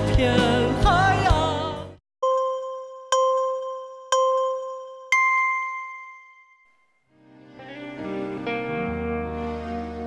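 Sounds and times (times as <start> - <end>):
bell-like chime: 2.2 - 7.1.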